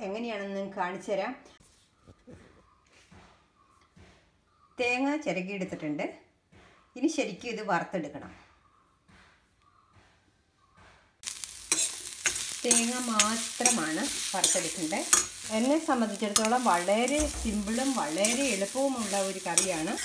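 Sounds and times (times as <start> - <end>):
coconut sizzling in a steel pan: 11.2 - 20.0
spatula scraping metal pan: 11.3 - 20.0.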